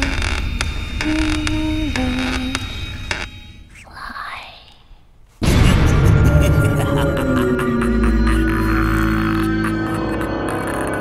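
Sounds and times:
breathy whisper: 3.7s - 5.1s
low drone: 5.4s - 11.0s.

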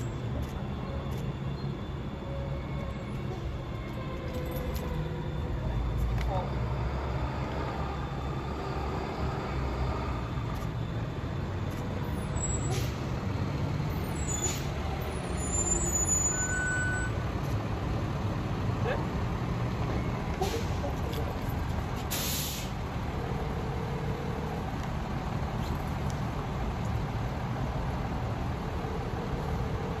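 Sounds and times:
traffic rumble: 0.0s - 30.0s
air brake hiss: 12.4s - 13.1s, 14.2s - 14.8s, 22.1s - 22.8s.

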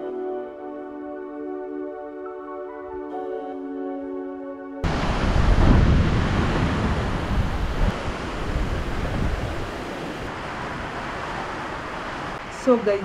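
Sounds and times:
heavy rain: 4.8s - 13.0s
wind buffeting microphone: 4.8s - 13.0s.

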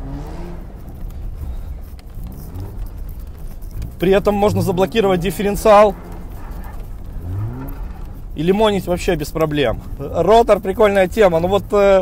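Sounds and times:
rotary engine running at low revs: 0.0s - 12.0s.

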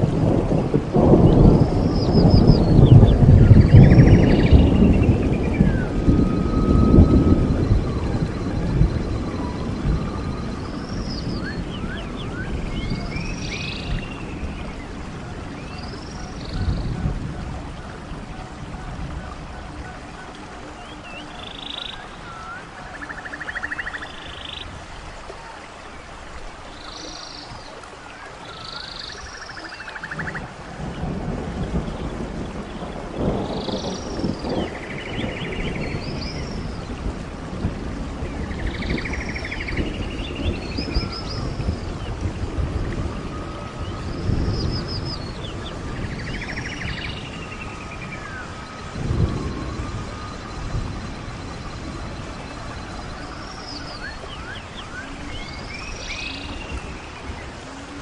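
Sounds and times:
birds calling: 0.0s - 58.0s
rain hiss: 0.0s - 58.0s.

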